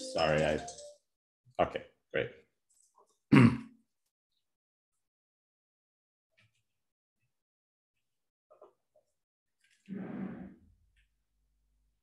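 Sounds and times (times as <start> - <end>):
man clearing his throat: 3.3 - 3.7.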